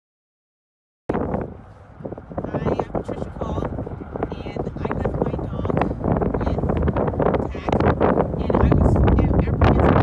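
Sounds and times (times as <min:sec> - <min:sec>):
wind rumbling on microphone: 0:01.1 - 0:10.0
person speaking: 0:02.4 - 0:06.8, 0:07.4 - 0:10.0.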